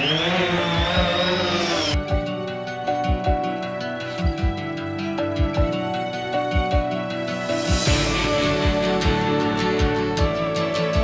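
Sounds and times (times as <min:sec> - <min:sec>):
drone motors whining: 0:00.0 - 0:02.1
background music with a beat: 0:00.0 - 0:11.0.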